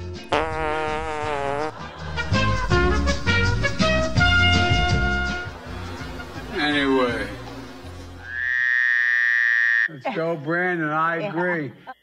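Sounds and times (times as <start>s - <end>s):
buzzy fart sound effect: 0.2s - 1.8s.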